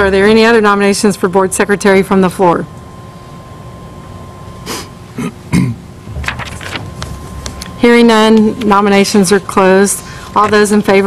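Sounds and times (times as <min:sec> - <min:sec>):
room noise: 0:00.0 - 0:11.0
person clearing throat: 0:04.7 - 0:05.9.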